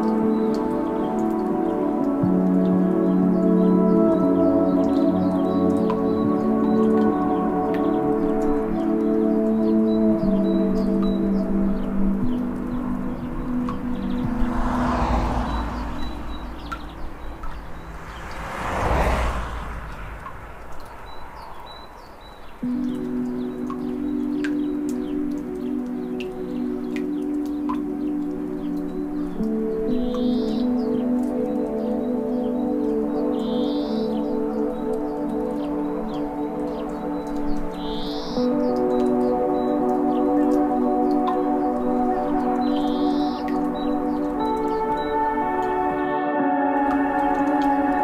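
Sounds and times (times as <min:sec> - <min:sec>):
ambient music with bell-like chords: 0:00.0 - 0:18.2, 0:20.8 - 0:48.0
high rising chirp: 0:15.4 - 0:22.6.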